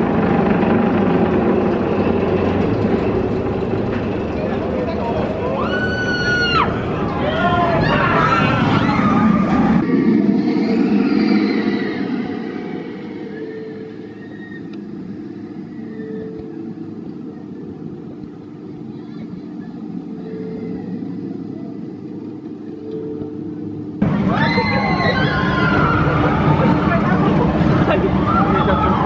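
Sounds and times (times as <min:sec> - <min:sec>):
roller coaster rumbling on track: 0:00.0 - 0:29.0.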